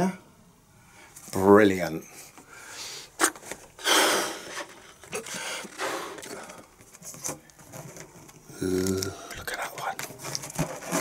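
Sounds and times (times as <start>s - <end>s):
balloons rustling: 3.2s - 9.3s, 9.9s - 11.0s.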